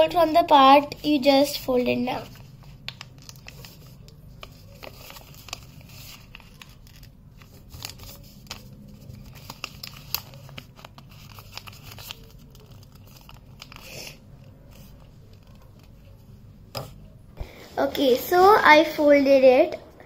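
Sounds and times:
paper being folded and creased: 1.0s - 16.3s.

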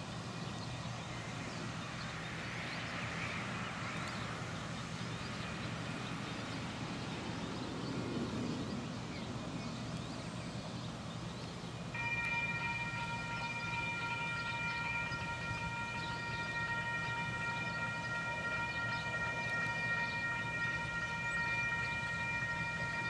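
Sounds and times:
low hum: 11.8s - 23.0s
locomotive whistle: 12.0s - 23.0s.

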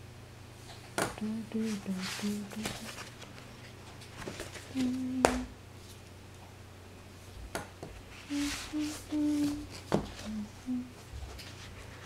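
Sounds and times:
person humming: 1.2s - 3.0s, 4.7s - 5.6s, 8.2s - 11.1s.

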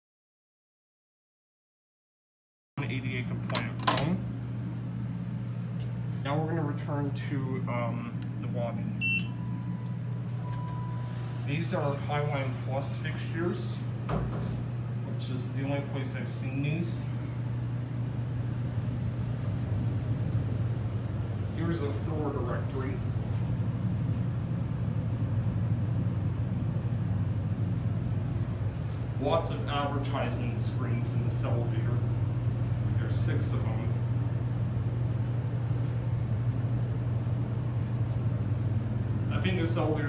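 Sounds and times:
ventilation fan hum: 2.8s - 40.0s
elevator button beep: 9.0s - 11.2s.

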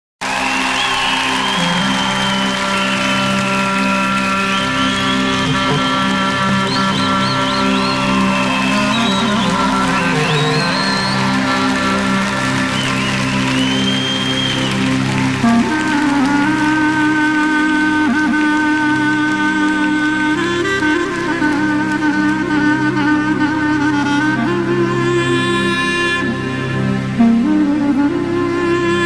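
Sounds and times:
held drone notes: 1.0s - 29.0s
ornamented high melody: 1.0s - 29.0s.

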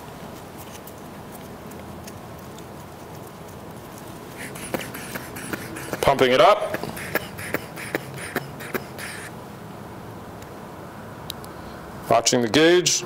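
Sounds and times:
blood pressure cuff rustling: 2.1s - 9.3s.

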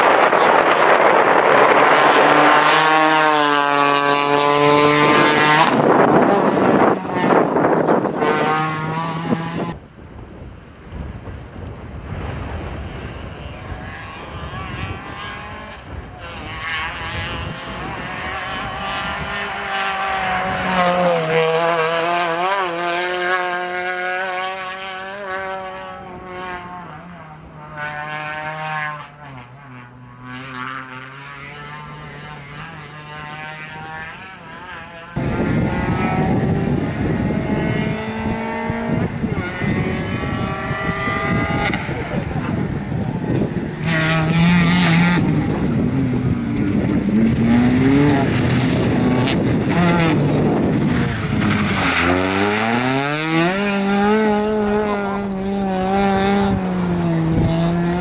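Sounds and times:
rally car engine revving: 0.0s - 9.9s, 11.3s - 58.0s
wheels throwing up soil: 39.5s - 58.0s.

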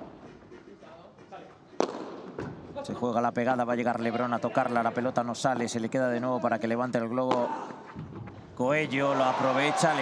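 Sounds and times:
padel ball being hit: 1.7s - 2.7s.

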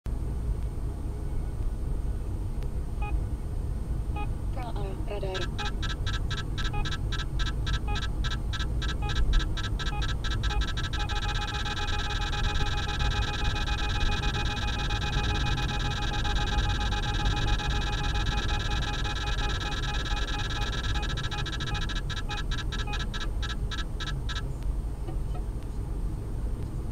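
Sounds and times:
car road noise: 0.1s - 26.9s
radar detector beeping alarm: 5.3s - 24.4s.

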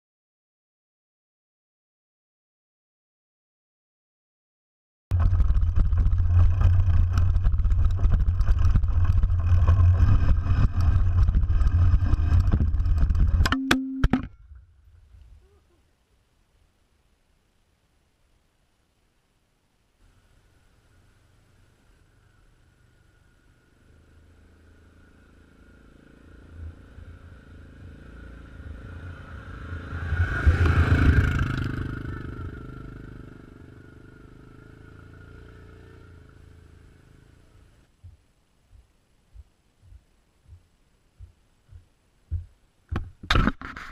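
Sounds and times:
bike rumbling on dirt trail: 5.1s - 13.5s, 25.2s - 33.2s
constant rattling: 5.1s - 13.5s
short ringing tone: 13.5s - 14.3s
motor vehicle passing by: 21.6s - 37.9s.

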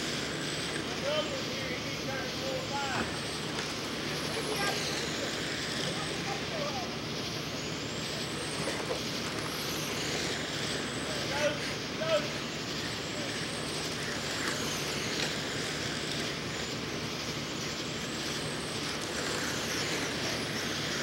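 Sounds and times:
electric rc cars humming: 0.0s - 21.0s
faint voices: 0.8s - 16.9s.

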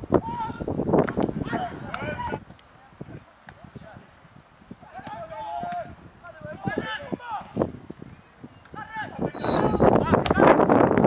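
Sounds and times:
distant players shouting: 4.8s - 7.6s.

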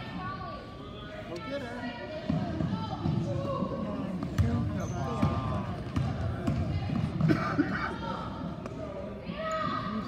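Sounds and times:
spectators talking: 0.0s - 10.0s.

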